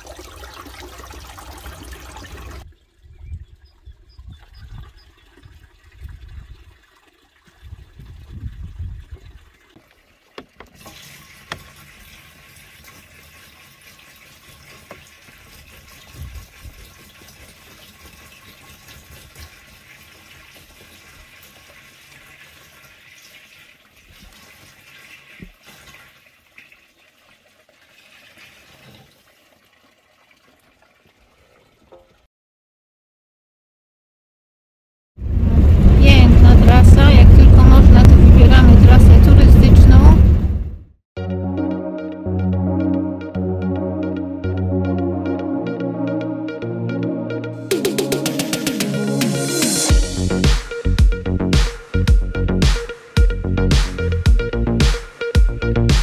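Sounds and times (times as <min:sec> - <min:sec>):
water pouring into plastic bottle: 0:04.3 - 0:32.2
low rumbling bumps: 0:35.2 - 0:40.8.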